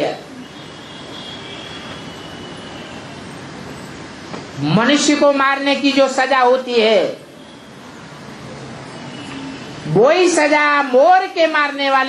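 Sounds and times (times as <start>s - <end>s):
rushing background noise: 0.0s - 12.0s.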